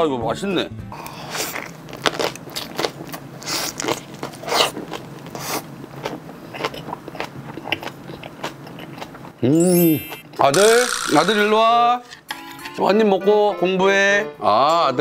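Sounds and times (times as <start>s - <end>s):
wet crunchy chewing: 1.0s - 9.4s.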